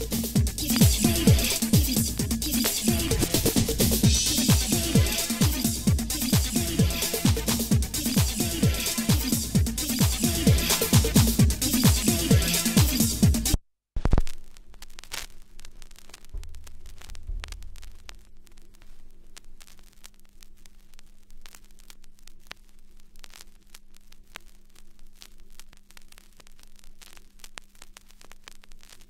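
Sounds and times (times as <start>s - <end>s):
vinyl crackle and clicks: 0.0s - 29.0s.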